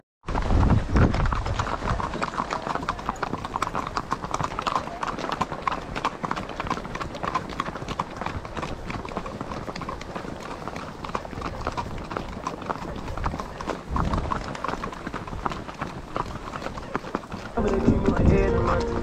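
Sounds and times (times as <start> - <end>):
horse hooves on asphalt: 0.2 - 19.0.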